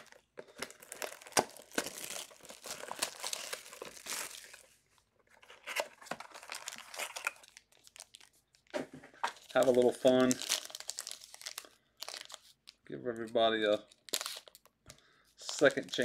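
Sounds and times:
foil wrapper crinkling and tearing: 0:00.0 - 0:04.8, 0:05.6 - 0:08.7, 0:09.3 - 0:12.8, 0:13.4 - 0:14.7, 0:15.4 - 0:16.0.

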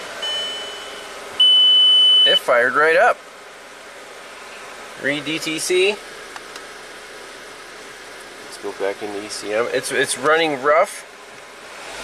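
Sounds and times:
car engine idling rough: 0:00.0 - 0:12.0.

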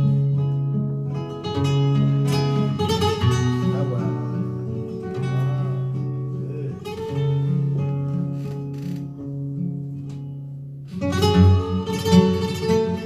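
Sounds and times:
flamenco guitar playing: 0:00.0 - 0:13.0.

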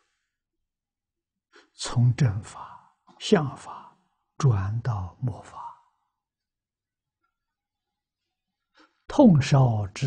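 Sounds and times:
man speaking: 0:01.8 - 0:05.9, 0:09.1 - 0:10.0.

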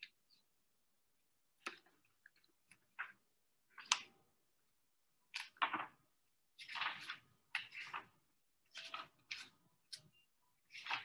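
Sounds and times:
paper pages rustling: 0:06.6 - 0:10.1, 0:10.7 - 0:11.0.

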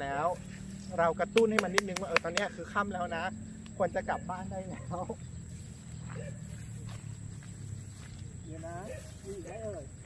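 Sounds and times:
footsteps through grass: 0:00.0 - 0:01.2, 0:04.9 - 0:10.0.

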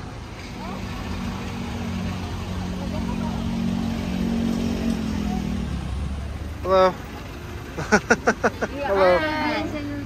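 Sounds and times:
woman laughing: 0:07.8 - 0:09.2.

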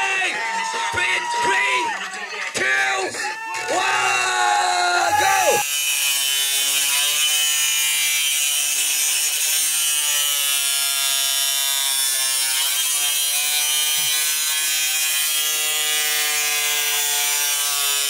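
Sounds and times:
crowd noise: 0:00.0 - 0:05.6
person shouting: 0:02.9 - 0:05.6.

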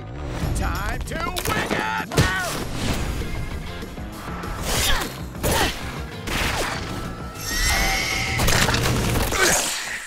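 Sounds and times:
trailer music: 0:00.0 - 0:01.5, 0:02.5 - 0:09.4.

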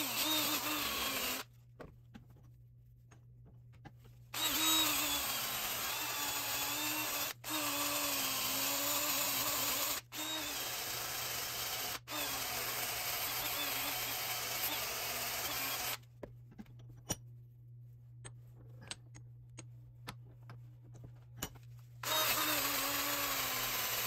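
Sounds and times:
power tool motor whine: 0:04.4 - 0:16.0, 0:22.0 - 0:24.0.

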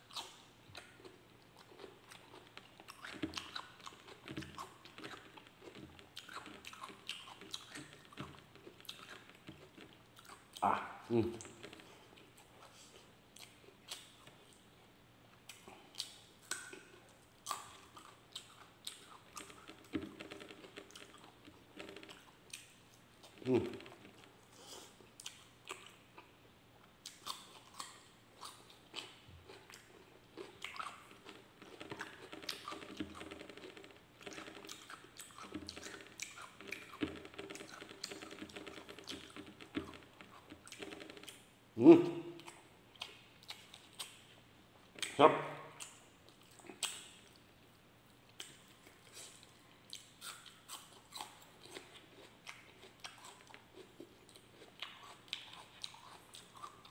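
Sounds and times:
person chewing crunchy food: 0:00.0 - 0:14.6, 0:15.5 - 0:26.3, 0:27.0 - 0:41.5, 0:48.3 - 0:56.9.

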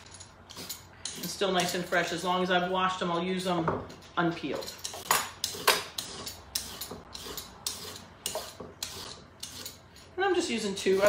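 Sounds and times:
peeler scraping a carrot: 0:00.5 - 0:02.2, 0:04.5 - 0:11.0.

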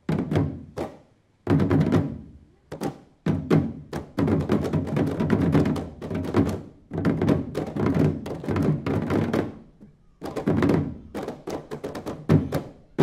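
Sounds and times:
hand drums played fast: 0:01.5 - 0:13.0.

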